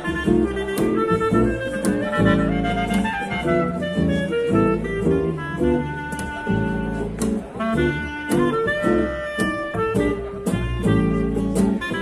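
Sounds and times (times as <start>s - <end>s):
plucked double bass: 0.0s - 12.0s
reed instrument melody: 0.0s - 12.0s
strummed acoustic guitar: 0.0s - 12.0s.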